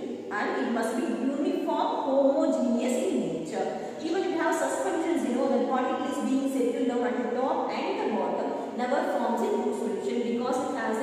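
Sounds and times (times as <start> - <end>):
woman lecturing: 0.0 - 11.0.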